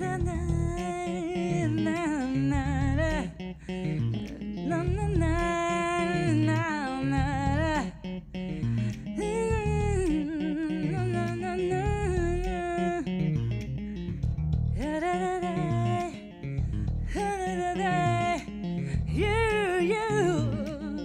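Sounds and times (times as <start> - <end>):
woman singing wordless phrases: 0.0 - 8.2, 8.9 - 13.2, 14.8 - 21.0
electric bass guitar: 0.0 - 21.0.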